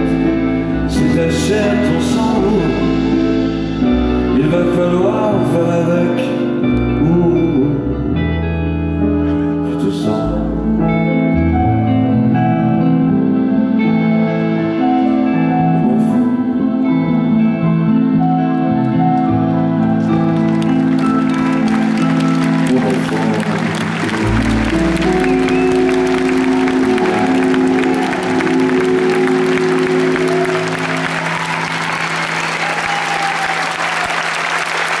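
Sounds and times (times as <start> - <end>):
held keyboard chords: 0.0 - 35.0
audience applause: 19.2 - 35.0.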